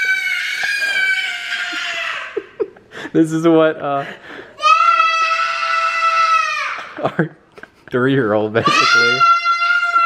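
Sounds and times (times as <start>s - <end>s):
child screaming high-pitched: 0.0s - 2.4s, 4.6s - 7.0s, 8.6s - 10.0s.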